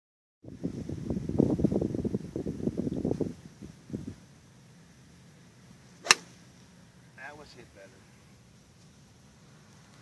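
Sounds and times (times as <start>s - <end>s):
golf club striking ball: 6.0s - 6.4s.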